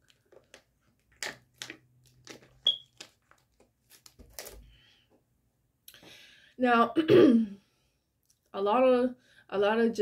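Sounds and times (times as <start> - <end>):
plastic bottle crinkling: 0.0 - 4.7
bottle squeak: 2.6 - 3.0.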